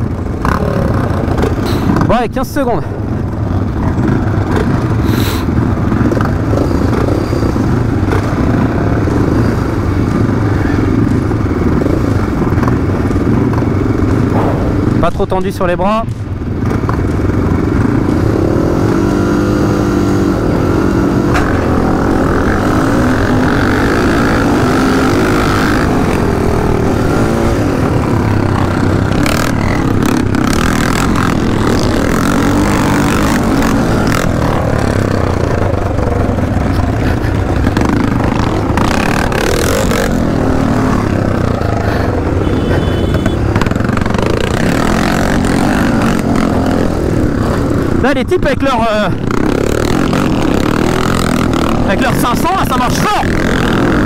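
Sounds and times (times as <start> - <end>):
dirt bike engines accelerating: 0.0 - 54.0.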